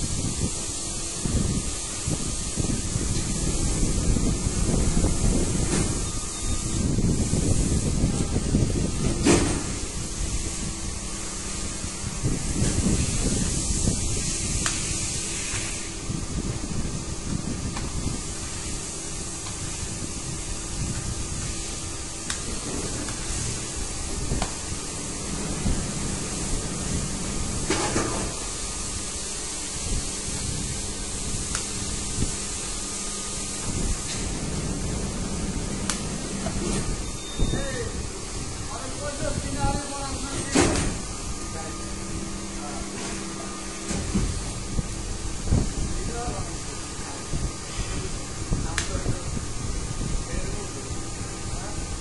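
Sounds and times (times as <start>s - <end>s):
hiss: 0.0s - 52.0s
machinery noise: 0.9s - 52.0s.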